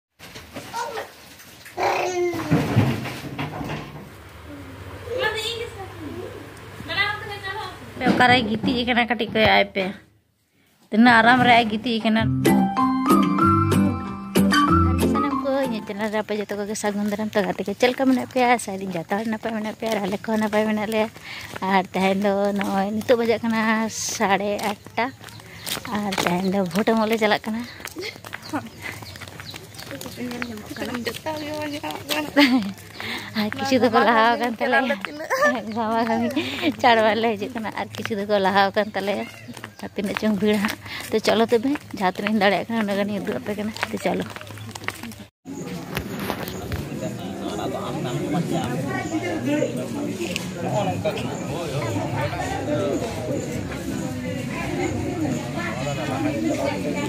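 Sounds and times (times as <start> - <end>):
faint broken voices: 17.8 - 57.0.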